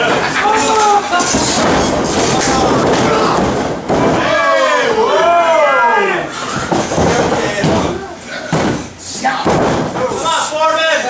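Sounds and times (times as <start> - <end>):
thuds on wrestling ring canvas: 1.2 - 4.4, 6.6 - 10.1
voices shouting: 2.4 - 6.4.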